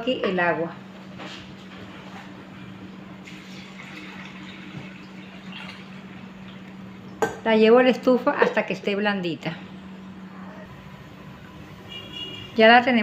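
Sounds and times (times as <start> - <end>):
water pouring into a pot: 3.2 - 6.5.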